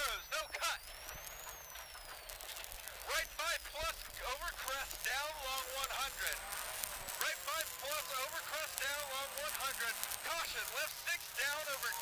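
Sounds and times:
thin high whine: 0:00.0 - 0:12.0
intercom hiss: 0:02.8 - 0:12.0.

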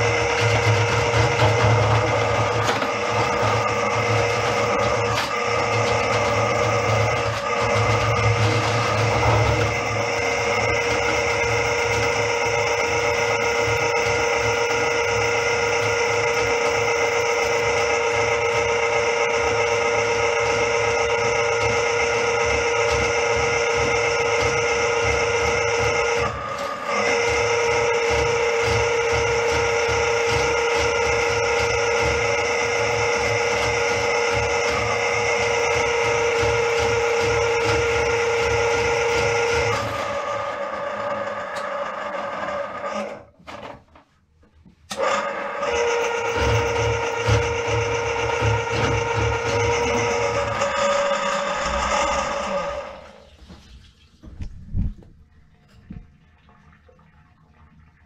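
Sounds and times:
drain snake machine humming: 0:00.0 - 0:43.3, 0:44.9 - 0:53.6.

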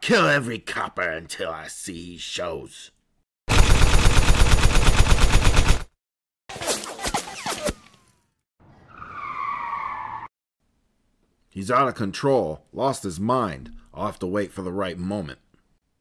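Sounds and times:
submachine gun firing: 0:03.5 - 0:05.9
car tires screeching: 0:08.8 - 0:10.3.

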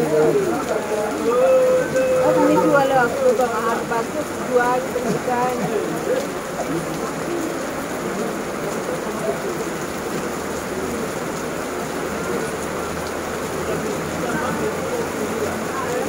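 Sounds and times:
heavy rain on paving: 0:00.0 - 0:16.0.

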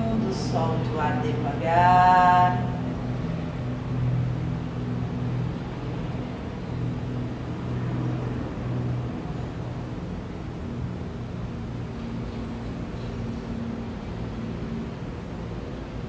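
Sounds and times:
low droning hum: 0:00.0 - 0:16.0.

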